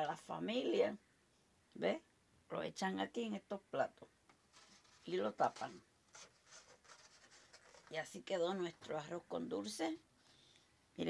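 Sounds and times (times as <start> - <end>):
styrofoam container creaking: 4.4 - 8.4.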